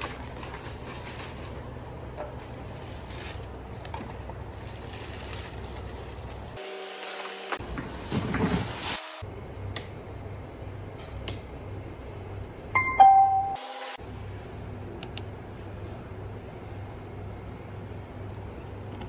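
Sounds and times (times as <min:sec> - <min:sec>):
plastic bags crinkling: 0:00.0 - 0:09.2.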